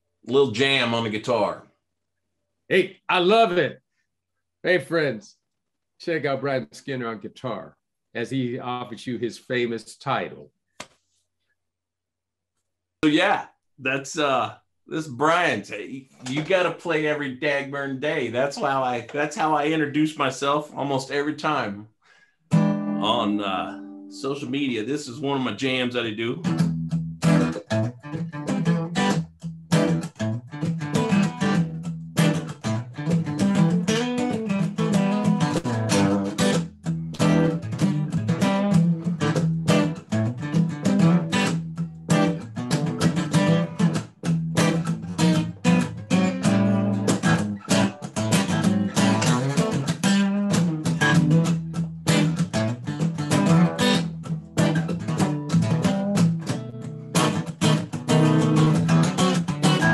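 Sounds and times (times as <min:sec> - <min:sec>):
acoustic guitar strumming: 0:22.5 - 0:24.7, 0:26.5 - 0:59.9.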